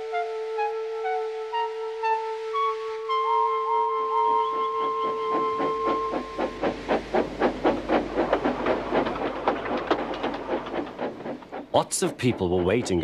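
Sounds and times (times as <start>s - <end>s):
steam locomotive chuffing: 3.3s - 13.0s
low running rumble: 5.4s - 13.0s.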